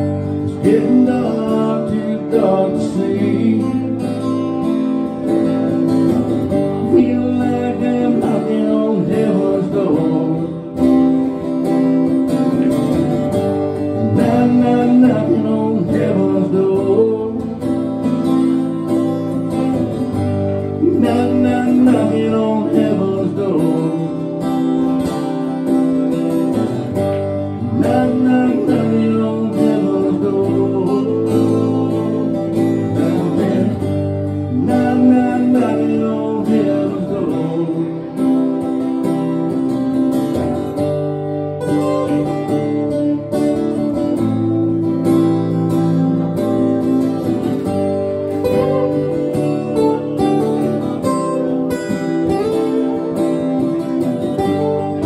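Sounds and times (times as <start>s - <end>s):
acoustic guitars strumming: 0.0s - 55.0s.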